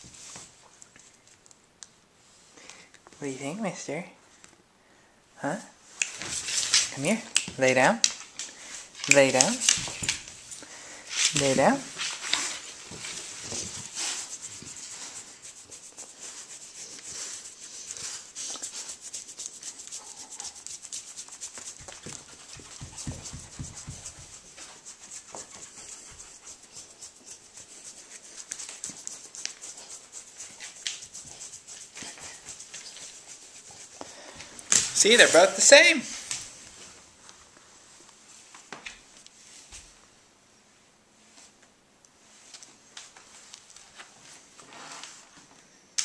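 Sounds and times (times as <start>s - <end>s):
hand rubbing dog fur: 9.1s - 34.1s, 35.0s - 36.3s
paws scuffing wooden floor: 9.5s - 15.3s, 18.0s - 36.8s
dog panting: 12.3s - 34.0s.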